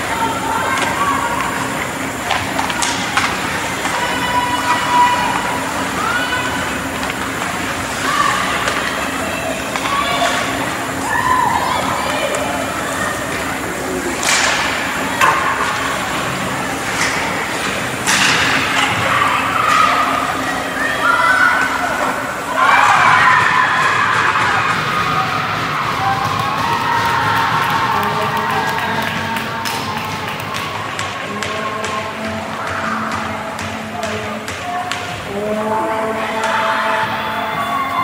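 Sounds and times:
players and spectators calling out: 0.0s - 38.0s.

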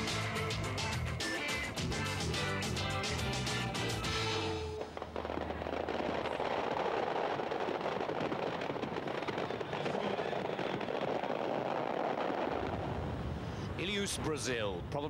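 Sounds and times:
dense crackling with small pops: 4.8s - 12.8s.

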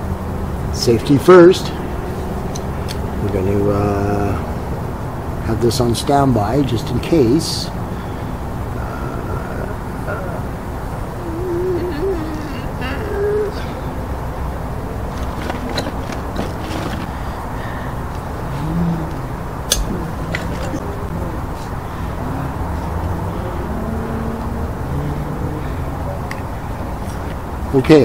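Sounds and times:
low outdoor background rumble: 0.0s - 28.0s.

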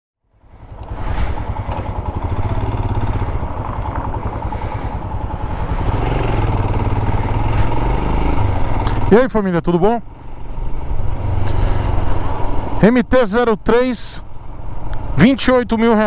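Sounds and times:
motorcycle engine running: 0.2s - 16.0s
road and wind noise: 0.2s - 16.0s.

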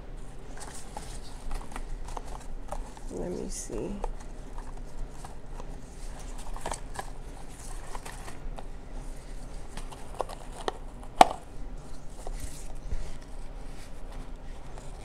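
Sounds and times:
ribbon and card rustling: 0.2s - 15.0s.

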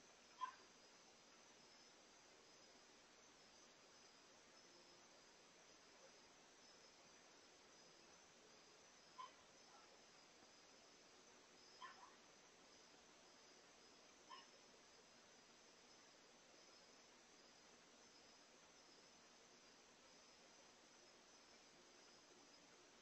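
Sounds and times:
crickets chirring: 0.0s - 23.0s.

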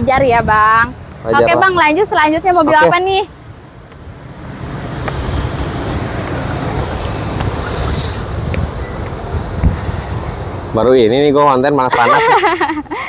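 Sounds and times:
passing vehicles rumbling: 0.0s - 13.0s
brief hisses: 6.8s - 10.3s.

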